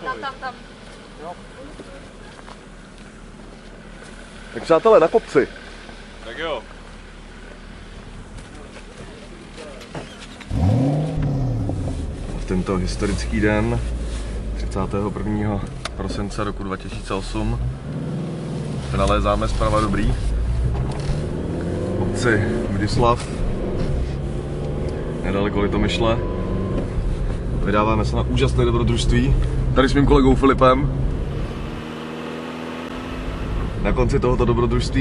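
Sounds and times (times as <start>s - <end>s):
car engine revving: 10.2s - 35.0s.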